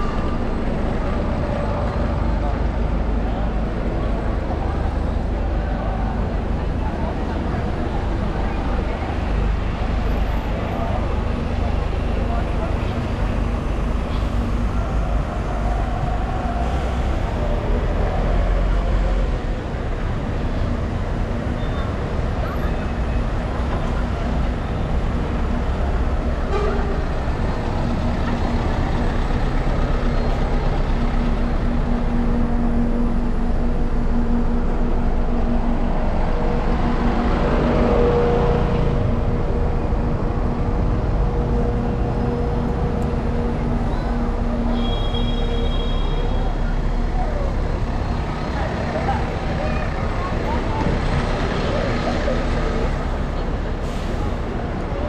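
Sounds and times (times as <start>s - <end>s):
buses and cars rumbling: 0.0s - 55.0s
pedestrians chattering: 0.0s - 55.0s
steady engine hum: 0.0s - 55.0s.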